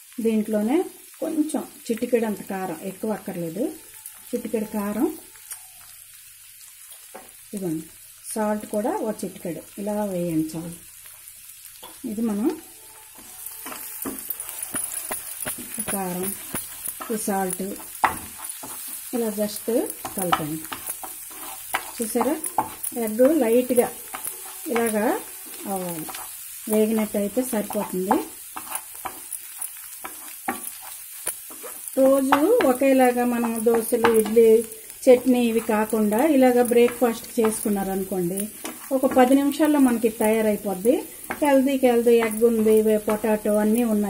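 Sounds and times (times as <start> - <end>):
food sizzling in a pan: 0.0 - 44.0
spatula scraping a pan: 11.8 - 40.0.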